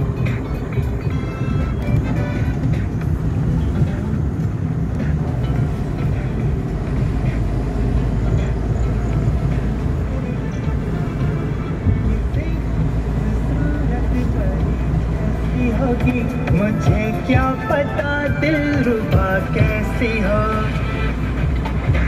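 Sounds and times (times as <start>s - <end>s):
car engine and road rumble: 0.0s - 22.0s.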